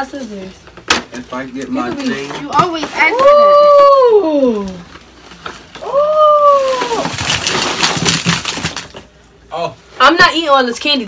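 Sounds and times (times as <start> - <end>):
packaging crinkling and rustling: 4.6 - 9.2
high excited ooh: 5.8 - 7.1.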